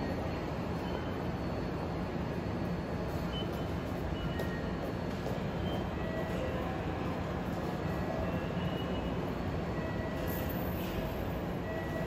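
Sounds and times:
idling electric trains humming: 0.0s - 12.0s.

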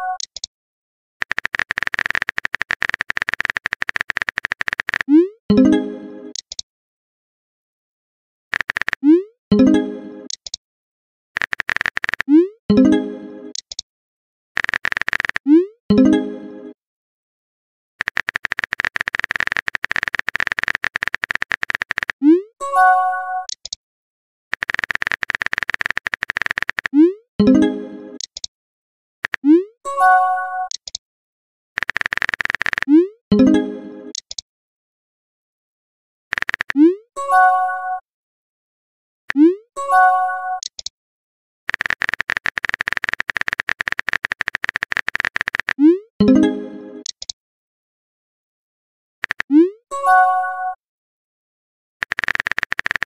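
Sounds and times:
fast typing clicks: 1.2s - 5.1s, 8.5s - 9.2s, 11.4s - 12.4s, 14.6s - 15.5s, 18.0s - 22.2s, 24.5s - 27.1s, 29.2s - 29.5s, 31.8s - 32.9s, 36.3s - 37.0s, 41.7s - 45.9s, 49.2s - 49.5s, 52.0s - 53.0s.

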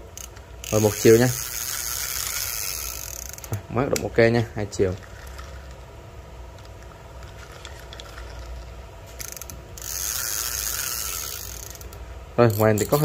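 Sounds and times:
fishing reel being cranked: 0.2s - 3.6s, 5.0s - 5.8s, 6.6s - 13.0s
fast reel clicks: 0.2s - 4.0s, 4.9s - 5.8s, 6.6s - 13.0s
hissing reel spin: 0.6s - 3.5s, 7.2s - 13.0s.

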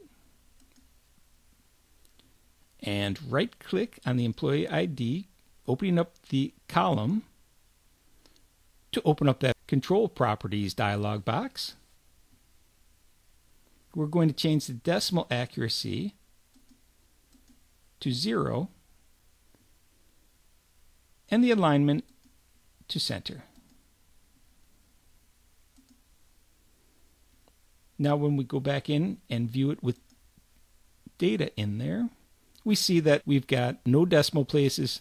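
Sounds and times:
faint computer mouse click: 0.6s - 0.9s, 25.7s - 26.0s
faint computer mouse clicks: 0.6s - 0.9s, 16.5s - 17.6s, 22.1s - 22.4s, 23.6s - 23.8s, 25.7s - 26.0s, 29.9s - 30.2s.

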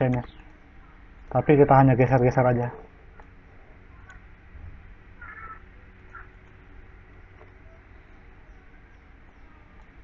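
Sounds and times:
low steady hum: 0.0s - 10.0s
high-pitched animal calls: 5.2s - 6.4s.

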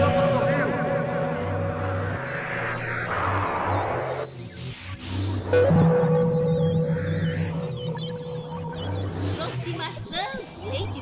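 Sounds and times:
long held tone: 0.0s - 3.1s, 5.5s - 9.3s
thin wavering high tone: 0.0s - 3.4s, 5.4s - 9.7s
pulsing low bass: 0.0s - 11.0s.

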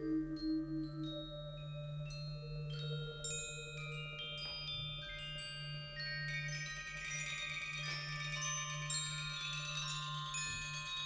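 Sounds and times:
bell-like metal percussion: 0.0s - 11.0s.

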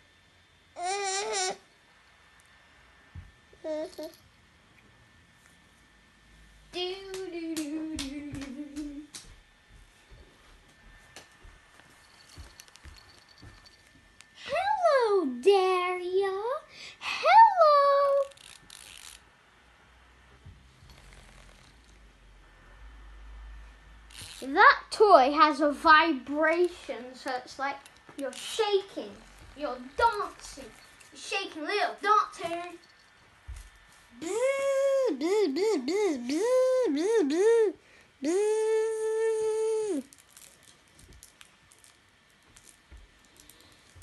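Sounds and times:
toy vibration mechanism whirring: 3.6s - 4.2s, 18.0s - 19.3s, 24.1s - 24.6s, 28.2s - 31.1s
person humming a high note: 34.2s - 40.1s.

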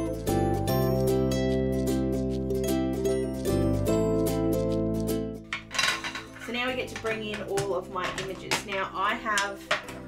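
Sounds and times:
plucked-string background music: 0.0s - 10.0s
plastic craft tools clattering: 5.5s - 10.0s.

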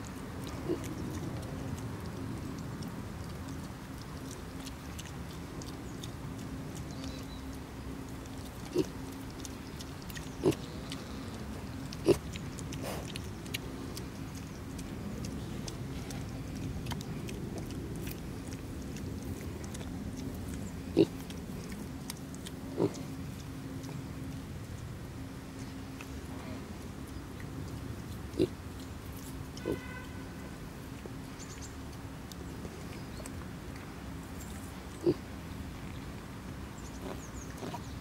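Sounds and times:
piglets grunting: 0.4s - 1.4s, 8.4s - 24.2s, 28.3s - 28.6s, 35.0s - 35.3s.

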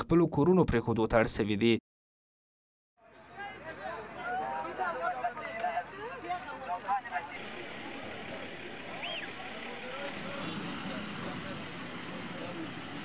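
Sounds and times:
faint voices: 3.0s - 13.0s
steady traffic noise: 3.1s - 13.0s.

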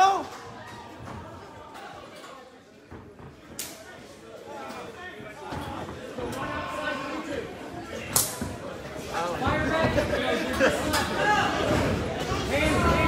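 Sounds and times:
indistinct voices in echoing hall: 0.0s - 13.0s.

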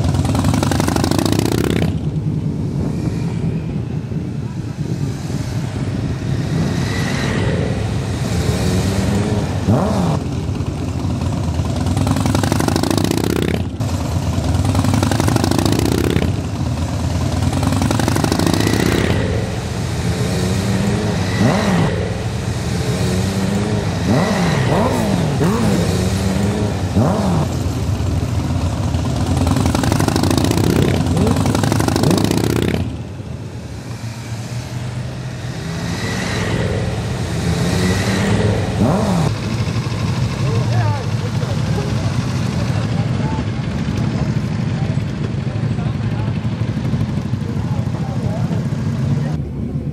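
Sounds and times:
motorcycles riding past: 0.0s - 49.9s.

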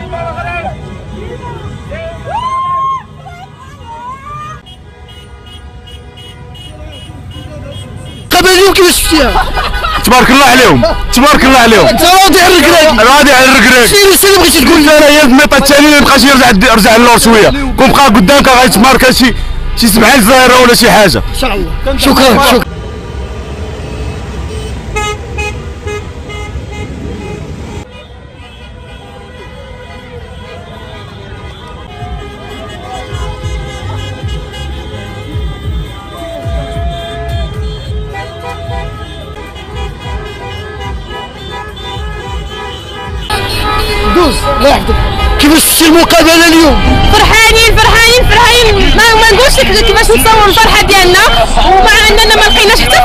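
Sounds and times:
car horns honking: 0.0s - 2.4s, 3.1s - 53.0s
crowd noise: 0.0s - 22.7s, 27.2s - 53.0s
low rumble of traffic: 0.0s - 53.0s
man's voice: 8.3s - 22.7s, 43.9s - 47.3s.

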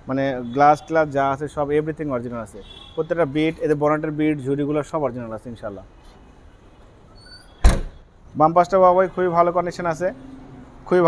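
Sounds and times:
car boot lid slamming: 7.6s - 8.0s.

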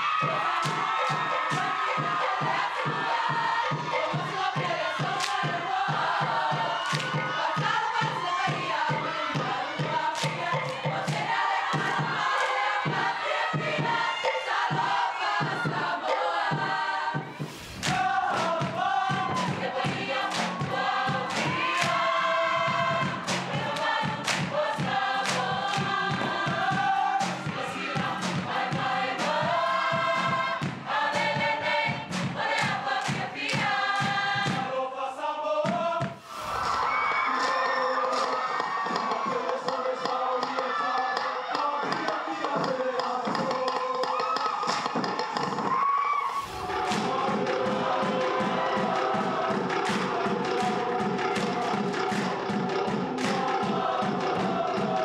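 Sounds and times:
rhythmic claps and slaps: 0.0s - 36.7s, 37.3s - 55.0s
choir sustained harmonies: 0.0s - 55.0s
group singing together: 0.0s - 55.0s.

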